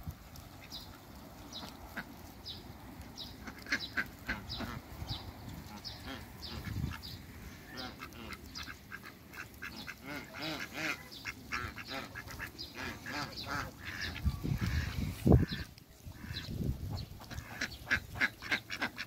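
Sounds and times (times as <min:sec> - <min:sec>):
ducks quacking: 0:00.5 - 0:02.4, 0:03.2 - 0:19.0
geese honking: 0:03.2 - 0:19.0.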